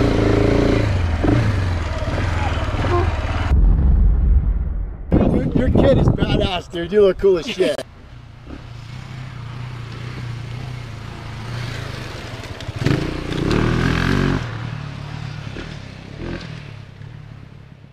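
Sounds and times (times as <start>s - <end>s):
motorcycle engine running: 0.0s - 3.5s
motorcycle engine revving: 0.0s - 3.6s, 8.3s - 17.5s.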